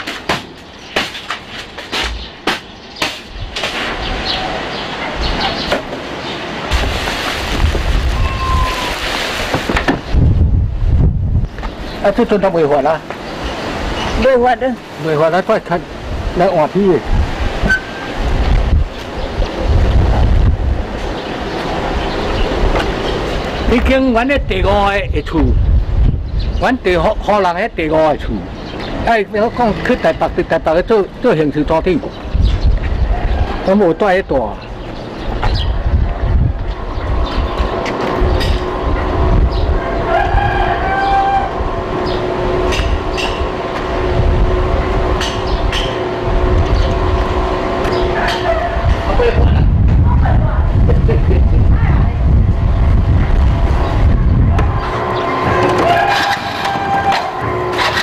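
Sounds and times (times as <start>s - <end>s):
road noise rumbling: 0.0s - 58.0s
wind buffeting microphone: 2.1s - 15.0s, 15.6s - 58.0s
brief higher tone: 8.2s - 9.0s
short high squeak: 8.2s - 9.0s, 17.6s - 18.1s.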